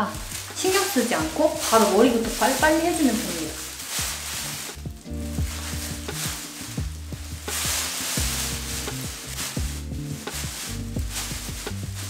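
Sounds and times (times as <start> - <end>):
background music with bass line: 0.0 - 12.0
plastic gloves and cape crinkling: 0.0 - 12.0
wet squelching of hair dye: 0.0 - 12.0.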